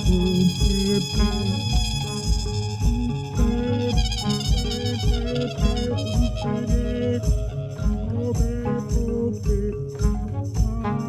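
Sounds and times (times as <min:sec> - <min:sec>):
electronic dance music: 0:00.0 - 0:11.0
kick drum beat: 0:00.0 - 0:11.0.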